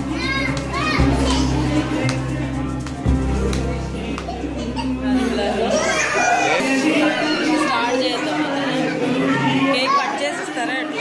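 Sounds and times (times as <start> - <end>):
party music with heavy bass: 0.0 - 4.7
children squealing excitedly: 5.7 - 8.0.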